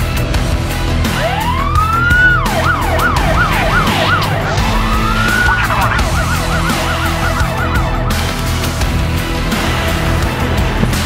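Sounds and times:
background music with beat: 0:00.0 - 0:11.0
police siren wail and yelp: 0:01.0 - 0:09.2.

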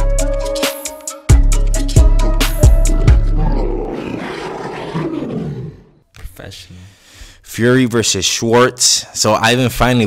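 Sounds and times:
loud rough roar: 0:03.2 - 0:05.9.

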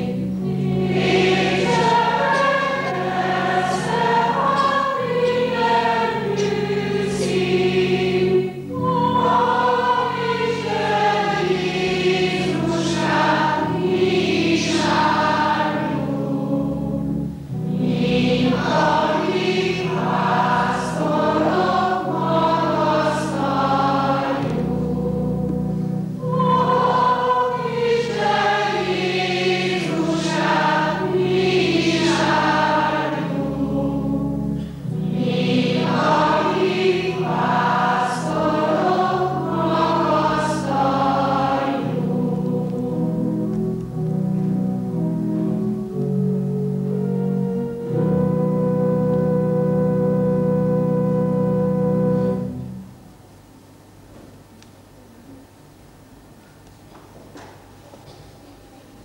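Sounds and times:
choir singing in parts: 0:00.0 - 0:46.2, 0:46.8 - 0:52.6
held low notes: 0:00.0 - 0:53.1.

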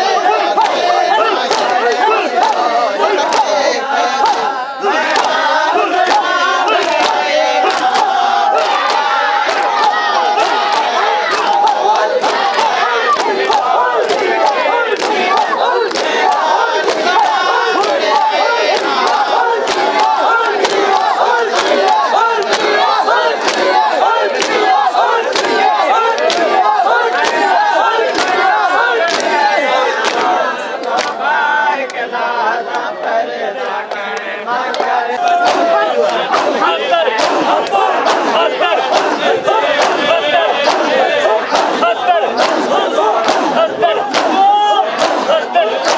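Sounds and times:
crowd shouting and chanting: 0:00.0 - 0:45.9
hands slapping bare chests: 0:00.5 - 0:03.5, 0:04.2 - 0:31.2, 0:34.7 - 0:45.9.

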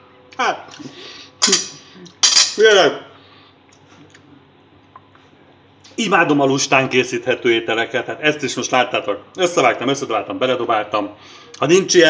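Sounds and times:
cutlery clinking on ceramic plate: 0:01.4 - 0:02.6.

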